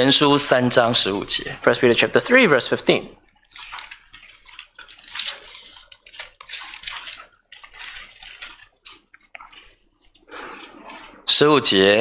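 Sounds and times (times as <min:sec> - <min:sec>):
pages turning and paper rustling: 0:03.4 - 0:11.2.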